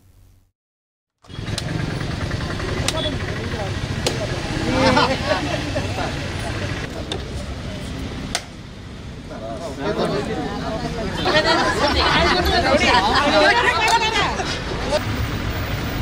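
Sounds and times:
engine rumble: 0:01.2 - 0:16.0
crowd talking: 0:02.0 - 0:15.2.

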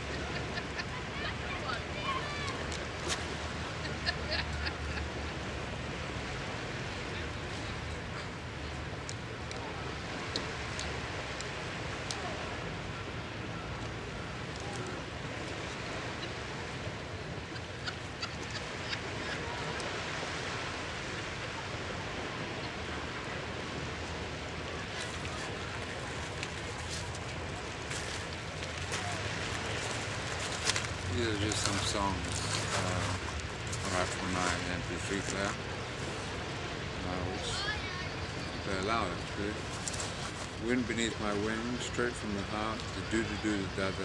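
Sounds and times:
surf on shingle beach: 0:00.0 - 0:44.0
wind: 0:00.0 - 0:44.0.

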